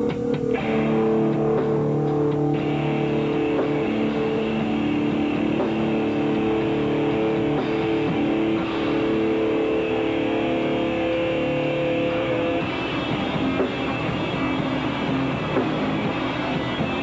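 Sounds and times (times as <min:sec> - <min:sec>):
distorted electric guitar chord: 0:00.0 - 0:17.0
drums: 0:00.0 - 0:17.0.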